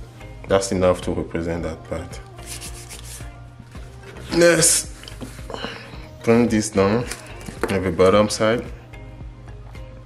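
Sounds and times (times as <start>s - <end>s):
hand rubbing across paper: 2.4s - 3.4s.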